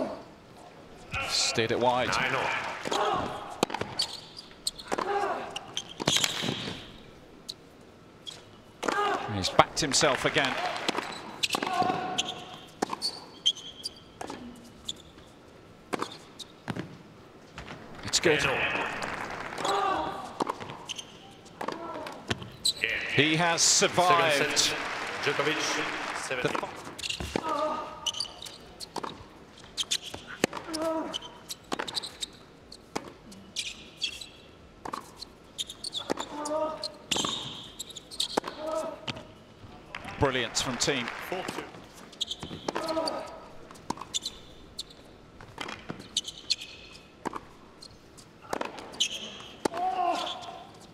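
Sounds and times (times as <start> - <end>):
shoe squeaks: 3.8 - 4.9, 5.6 - 6.9, 8.2 - 8.6, 11.0 - 15.4, 20.6 - 21.6, 22.5 - 22.9, 27.0 - 27.3, 28.0 - 34.4, 35.0 - 38.5, 42.1 - 45.1, 46.0 - 47.1, 47.7 - 48.3, 48.9 - 50.9.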